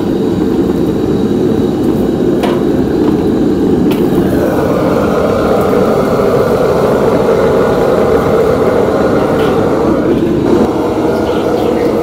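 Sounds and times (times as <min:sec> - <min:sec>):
wok stove running: 0:00.0 - 0:12.0.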